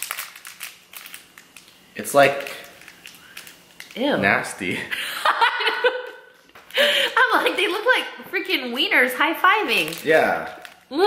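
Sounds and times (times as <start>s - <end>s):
plastic candy wrapper crinkling: 0.0s - 4.7s, 9.6s - 11.0s.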